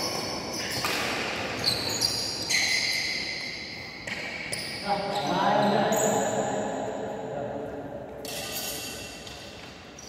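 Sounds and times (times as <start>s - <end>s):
shoes squeaking on court: 0.0s - 6.4s.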